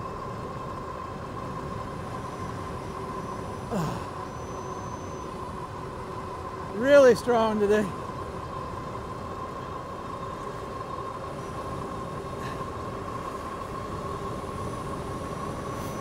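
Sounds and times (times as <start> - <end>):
high electric motor whine: 0.0 - 16.0
road noise: 0.0 - 16.0
rushing wind: 0.0 - 16.0.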